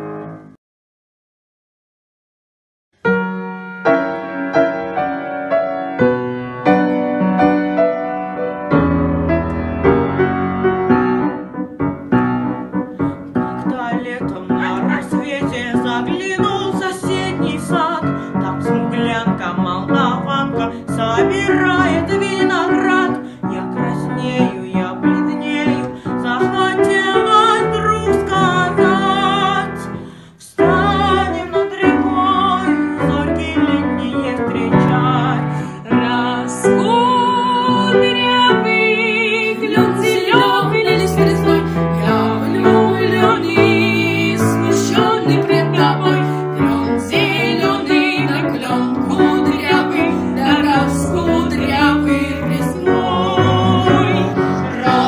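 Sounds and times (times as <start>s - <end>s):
piano chords and notes: 0.0s - 0.6s, 3.0s - 55.0s
instrumental accompaniment: 3.1s - 55.0s
young person singing with vibrato: 13.1s - 55.0s
children's choir singing: 39.5s - 55.0s.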